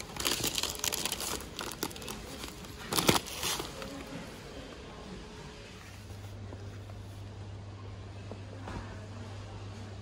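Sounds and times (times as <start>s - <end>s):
plastic bag crinkling: 0.0s - 4.3s.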